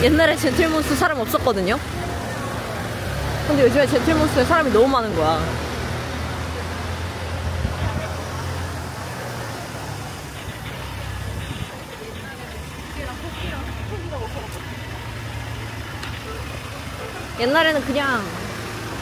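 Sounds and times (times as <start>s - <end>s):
faint voices of passers-by: 0.0s - 19.0s
minivan engine humming: 0.0s - 19.0s
traffic noise: 0.0s - 19.0s.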